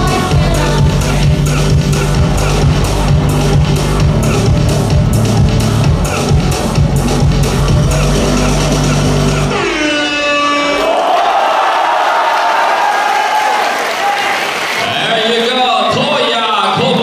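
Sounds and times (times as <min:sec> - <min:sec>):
electronic dance music: 0:00.0 - 0:10.9
audience applause and cheering: 0:10.7 - 0:16.3.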